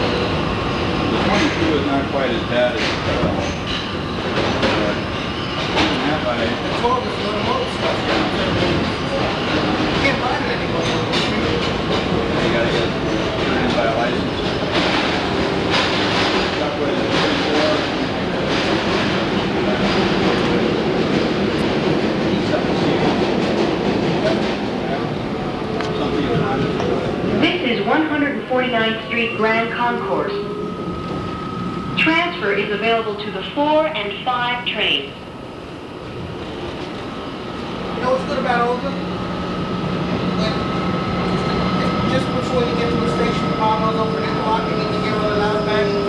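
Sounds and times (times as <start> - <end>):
subway wheels rumbling on rail: 0.0 - 46.0.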